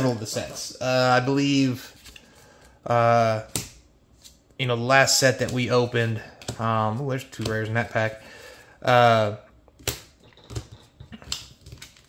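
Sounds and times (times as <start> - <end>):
trading cards being handled: 0.0 - 2.7
cards clicking and snapping: 9.7 - 12.0.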